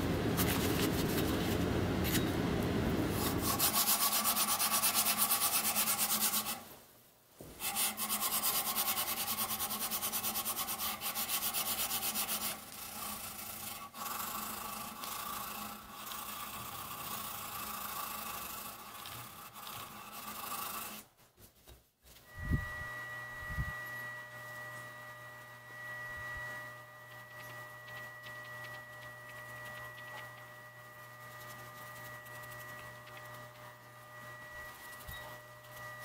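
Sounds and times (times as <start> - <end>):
blade hand-sanding strokes: 3.1 - 6.7, 7.6 - 21.2, 27.1 - 36.0.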